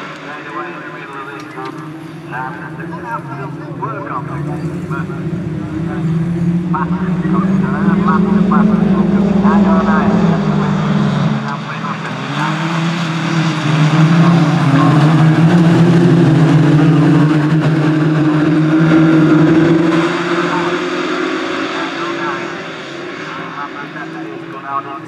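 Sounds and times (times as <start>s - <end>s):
racing buggy engines at high revs: 0.0s - 25.0s.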